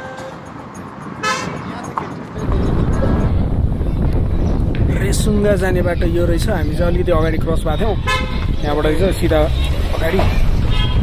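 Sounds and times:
vehicle horn toot: 1.2 - 1.6, 8.0 - 8.5, 10.6 - 11.0
loud low rumble: 2.4 - 10.7.

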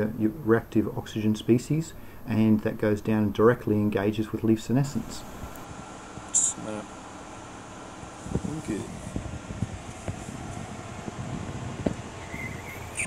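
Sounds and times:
ventilation fan whirring: 0.0 - 13.0.

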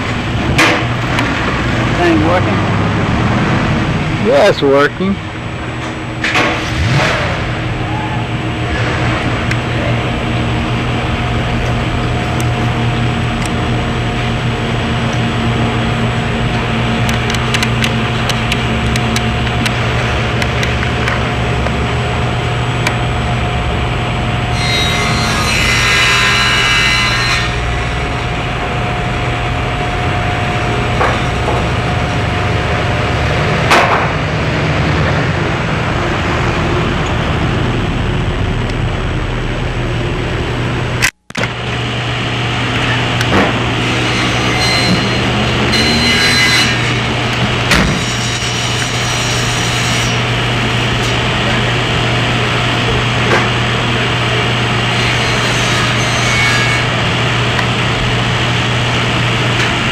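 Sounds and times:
steady low hum: 0.0 - 45.7.

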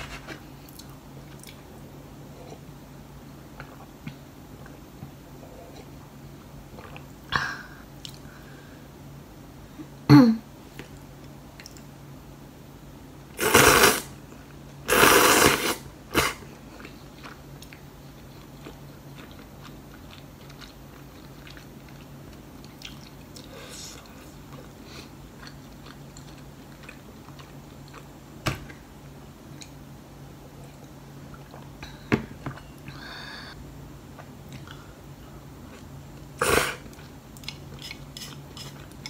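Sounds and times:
slurping noodles: 13.4 - 14.1, 14.9 - 16.4
quiet chewing: 16.7 - 28.1, 35.7 - 39.0.

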